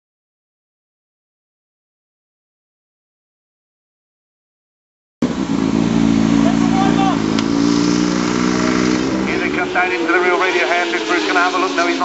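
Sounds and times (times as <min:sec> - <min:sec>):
racing motorcycles at high revs: 0:05.2 - 0:12.0.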